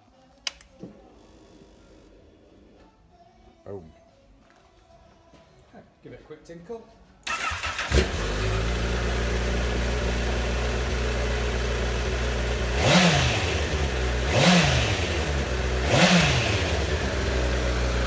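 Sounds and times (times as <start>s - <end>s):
motorcycle engine idling and revving: 7.3s - 18.0s.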